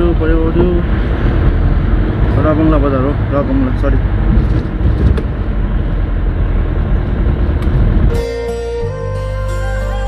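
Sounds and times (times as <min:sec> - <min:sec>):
engine and road rumble: 0:00.0 - 0:10.0
background music sustained notes: 0:08.1 - 0:10.0.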